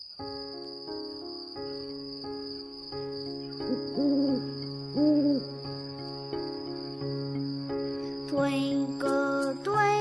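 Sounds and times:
electronic lullaby melody: 2.6 - 10.0
owl-like hoots: 3.7 - 5.5.

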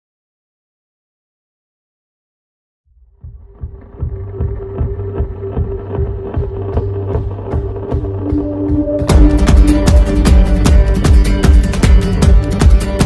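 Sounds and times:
music with steady beat: 3.1 - 13.0.

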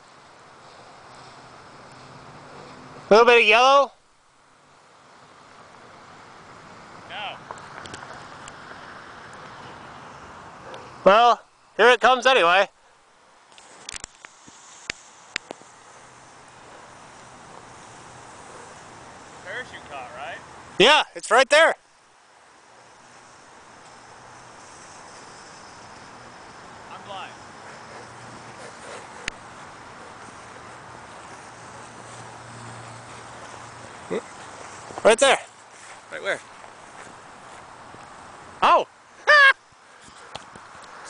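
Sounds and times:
outdoor background hiss: 0.0 - 41.0.

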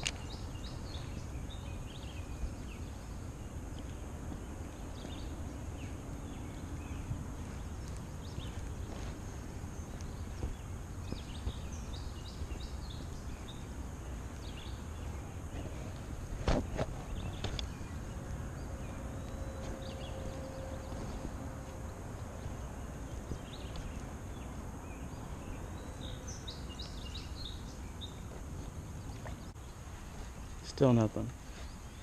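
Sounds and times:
small birds chirping: 0.0 - 32.0
low steady rumble: 0.2 - 30.3.

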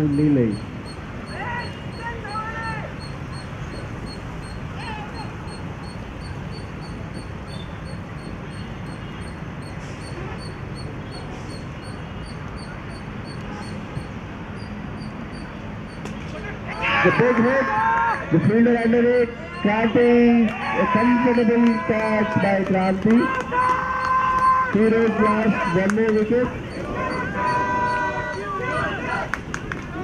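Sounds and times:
distant calls: 0.0 - 29.7
open-air background noise: 0.0 - 30.0.

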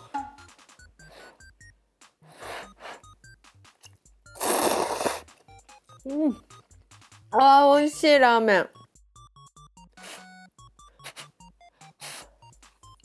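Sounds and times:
light background music: 0.0 - 13.0
person slurping noodles: 4.3 - 5.4.

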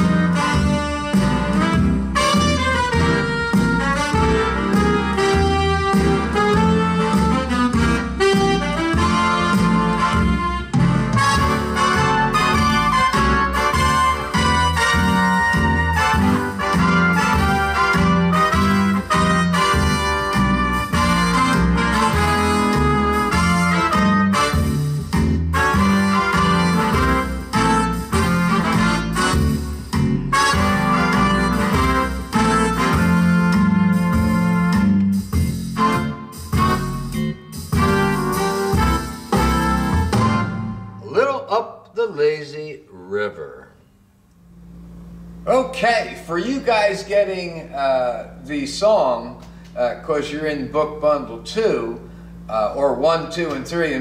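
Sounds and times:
keyboard melody with chords: 0.0 - 41.3
accompaniment bass and drums: 0.0 - 41.5.

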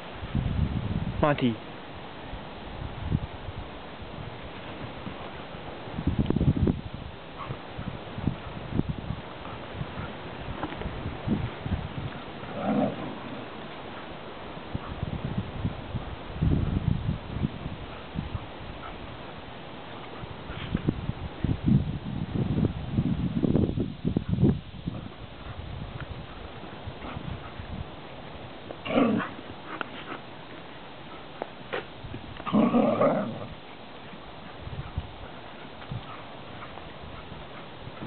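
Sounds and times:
dog vocal outburst: 12.4 - 13.5
dog growling: 12.4 - 13.6, 28.8 - 30.2, 32.5 - 33.6.

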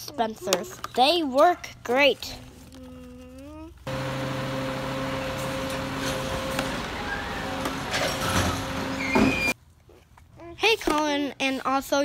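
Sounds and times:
garbage truck engine idling: 3.9 - 9.5.

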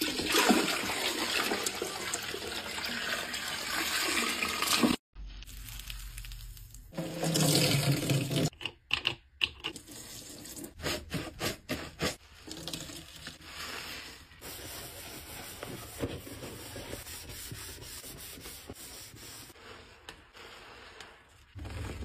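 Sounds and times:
sponge rubbing foam: 13.4 - 22.0.

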